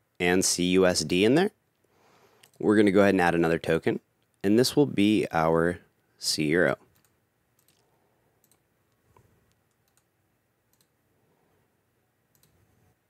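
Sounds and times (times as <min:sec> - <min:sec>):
computer mouse clicks: 0:02.4 - 0:02.6, 0:06.9 - 0:10.1, 0:10.7 - 0:11.0, 0:12.3 - 0:12.6.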